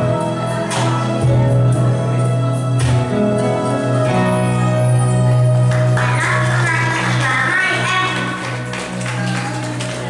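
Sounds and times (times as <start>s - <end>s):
electronic keyboard chord: 0.0s - 10.0s.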